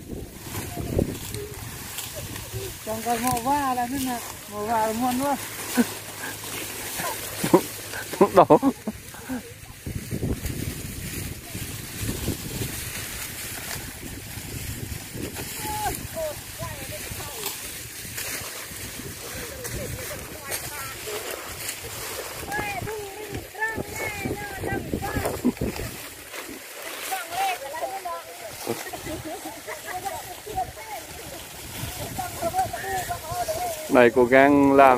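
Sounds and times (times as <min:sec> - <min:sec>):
distant voices calling: 0:00.0 - 0:09.9
wind rumbling on microphone: 0:00.0 - 0:26.6, 0:28.5 - 0:34.9
workers talking and calling out: 0:00.0 - 0:34.9.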